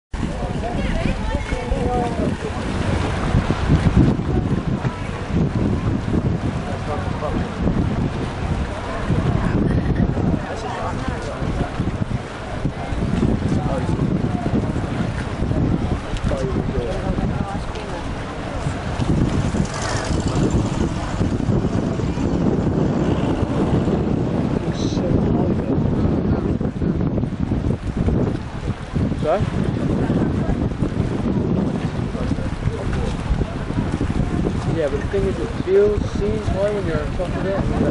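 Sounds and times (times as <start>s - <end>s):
wind buffeting microphone: 0.1s - 37.9s
faint voices: 0.2s - 37.9s.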